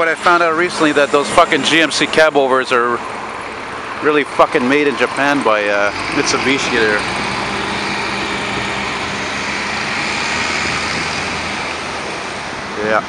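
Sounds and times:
road traffic: 0.0s - 13.0s.

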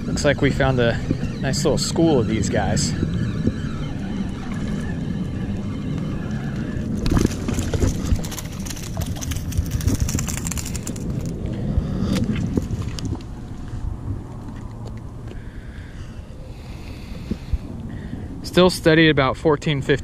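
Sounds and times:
wind rumble on microphone: 0.0s - 20.0s
fishing reel cranking: 0.7s - 11.3s.

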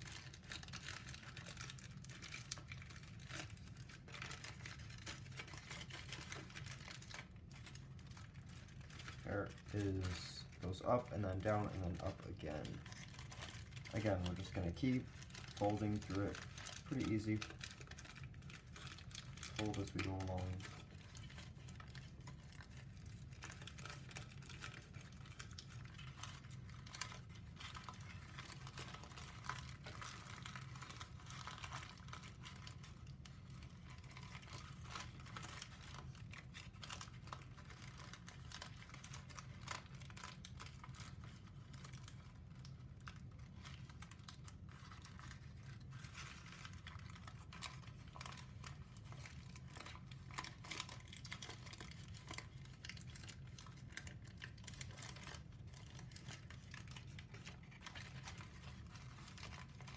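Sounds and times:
low steady hum: 0.0s - 59.9s
paper crinkling being folded: 0.0s - 59.9s.

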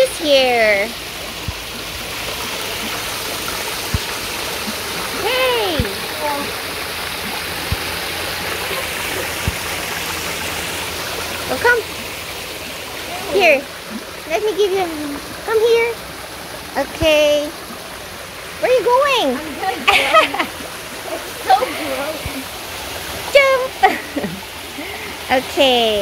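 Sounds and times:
waterfall splashing into pond: 0.0s - 26.0s.

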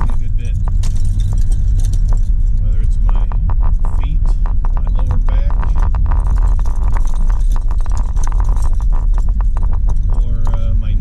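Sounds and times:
rapid clicks and rattles: 0.0s - 11.0s
road and engine rumble: 0.0s - 11.0s.

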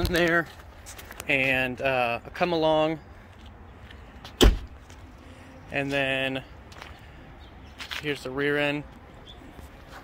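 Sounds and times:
car door shutting: 4.4s - 4.7s.

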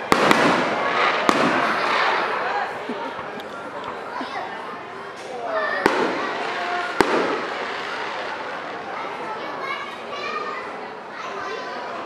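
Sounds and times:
fireworks bangs: 0.0s - 2.8s, 5.2s - 9.2s
rumbling echo: 0.0s - 2.9s, 5.8s - 8.9s
people talking: 0.0s - 12.0s.

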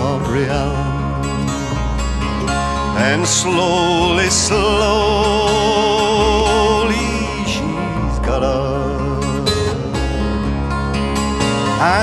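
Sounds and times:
man singing: 0.0s - 1.2s, 2.9s - 10.0s, 11.7s - 12.0s
plucked strings folk accompaniment: 0.0s - 12.0s.

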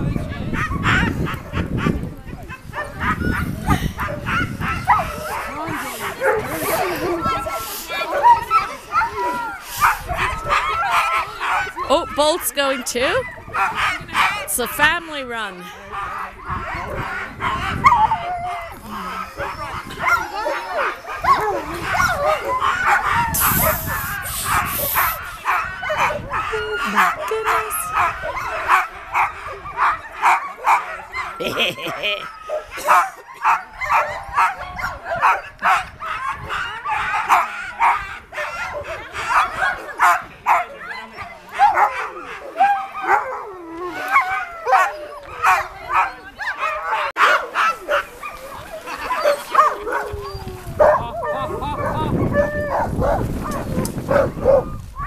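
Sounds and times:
dogs barking yipping and whining: 0.0s - 14.5s, 15.6s - 55.0s.

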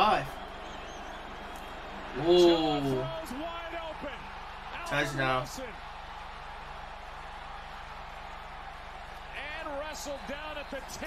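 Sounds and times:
stadium crowd noise: 0.0s - 11.0s
commentator talking: 2.2s - 5.7s.

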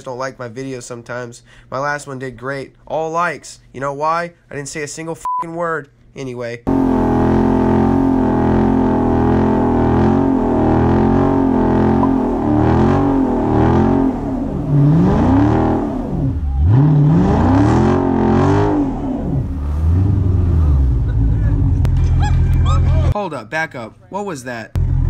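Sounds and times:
car engine revving high: 6.7s - 22.0s.

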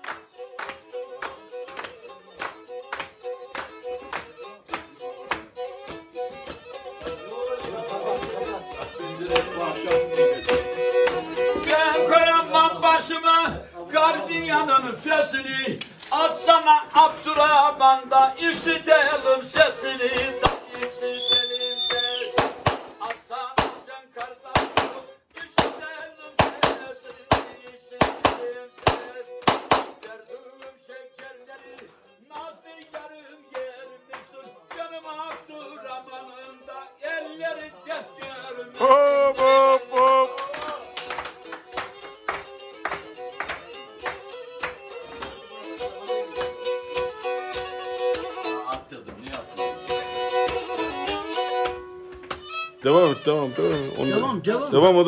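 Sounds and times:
sharp rhythmic claps: 0.0s - 12.0s, 18.5s - 35.6s, 38.2s - 53.9s
kemence playing folk tune: 0.0s - 55.0s
man's voice ringing out: 52.8s - 55.0s.

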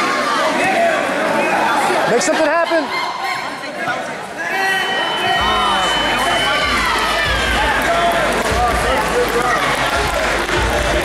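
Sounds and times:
crowd chatter: 0.0s - 11.0s.

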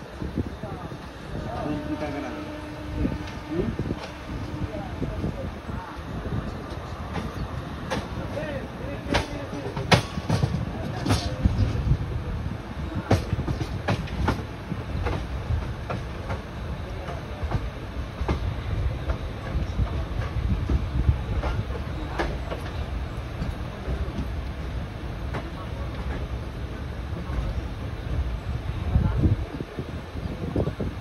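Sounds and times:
train low rumble: 0.0s - 31.0s.

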